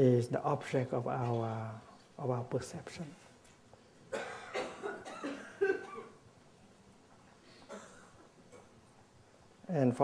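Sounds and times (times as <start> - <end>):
man coughing: 4.1 - 6.2.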